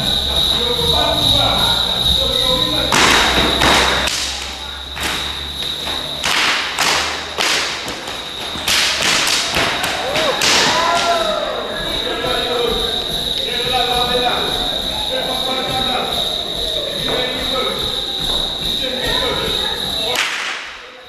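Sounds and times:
loud sharp impacts in a hall: 0:00.0 - 0:16.3, 0:20.0 - 0:21.0.

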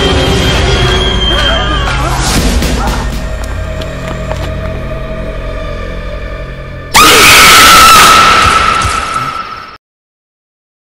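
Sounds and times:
low music drone: 0:00.0 - 0:07.0
loud rising scream: 0:06.9 - 0:09.8.

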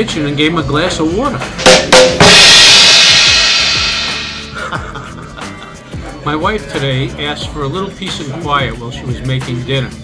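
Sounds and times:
crash cymbal ringing: 0:01.6 - 0:04.8.

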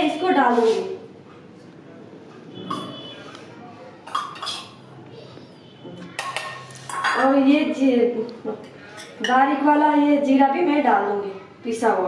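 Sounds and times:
steel spoon clinking bowl: 0:04.1 - 0:04.8.

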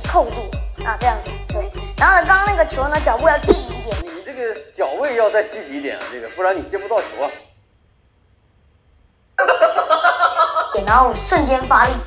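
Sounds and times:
man and woman laughing: 0:09.4 - 0:10.8.

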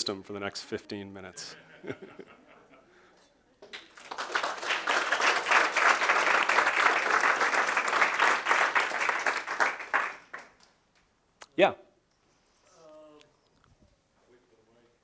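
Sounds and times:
audience applauding: 0:03.6 - 0:10.7.

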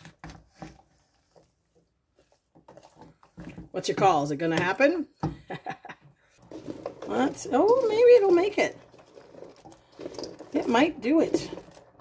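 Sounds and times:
wooden spoon scraping a pot: 0:00.0 - 0:04.7, 0:06.4 - 0:12.0
faint stirring: 0:00.4 - 0:04.2, 0:06.3 - 0:12.0.

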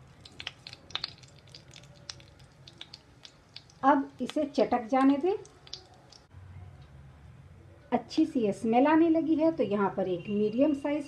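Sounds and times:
seeds crackling in hot oil: 0:00.0 - 0:06.3.

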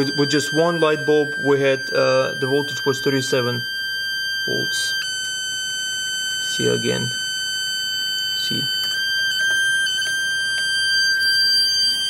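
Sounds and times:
transformer high-pitched whine: 0:00.0 - 0:12.0.

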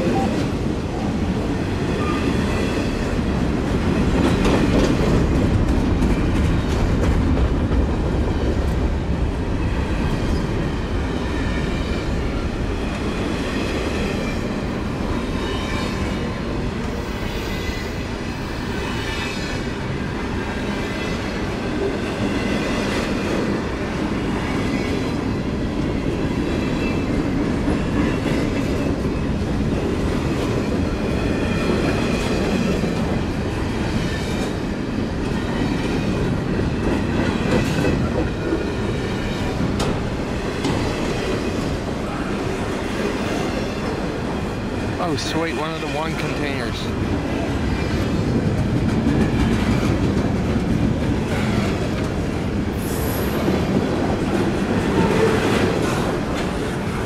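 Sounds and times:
steel wheels rumbling on rail: 0:00.0 - 0:57.0.

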